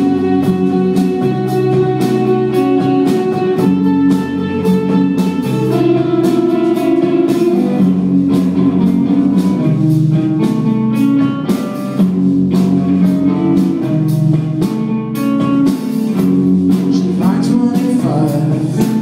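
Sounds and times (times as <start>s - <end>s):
bass guitar: 0.0s - 19.0s
drum kit with cymbal hits: 0.0s - 19.0s
electric guitars: 0.0s - 19.0s.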